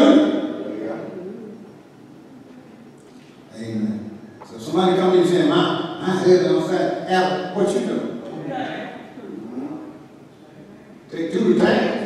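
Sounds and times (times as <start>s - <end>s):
man speaking: 0.0s - 1.4s.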